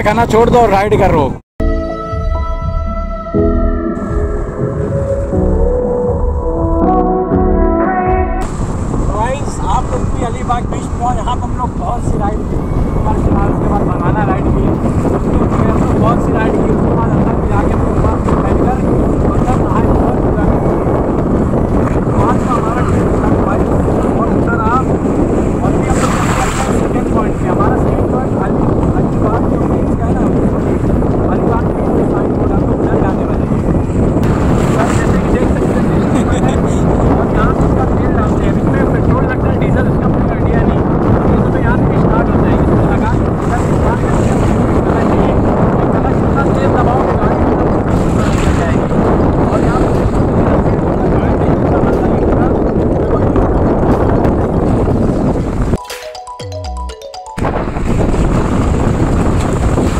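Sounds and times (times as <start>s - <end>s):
wind buffeting microphone: 0.0s - 1.4s, 3.9s - 55.8s, 57.4s - 59.9s
sea waves washing on beach: 8.4s - 52.2s, 57.6s - 59.9s.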